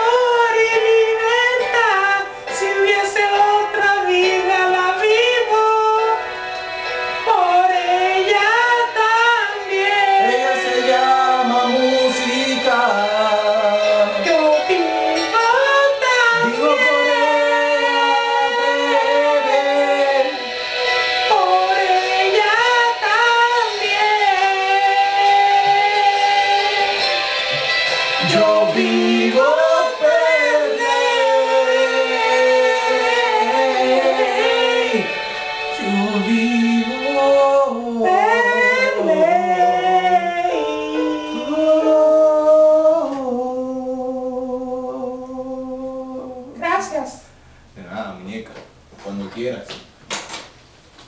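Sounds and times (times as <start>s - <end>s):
high voice singing ballad: 0.0s - 46.6s
music: 0.0s - 47.6s.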